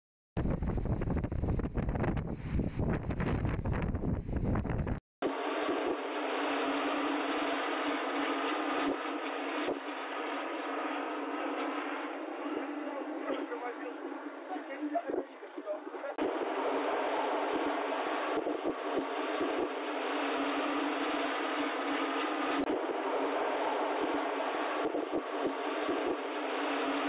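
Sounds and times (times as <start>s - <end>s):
blizzard wind rushing: 0.4s - 27.0s.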